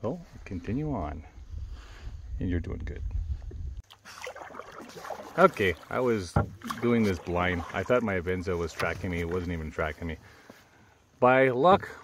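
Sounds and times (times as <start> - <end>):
low rumble on microphone: 0.4 - 3.8
canoe paddle in water: 3.8 - 10.8.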